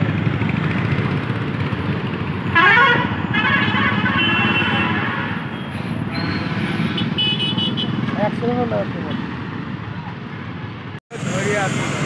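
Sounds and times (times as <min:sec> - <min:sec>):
road traffic noise: 0:00.0 - 0:12.0.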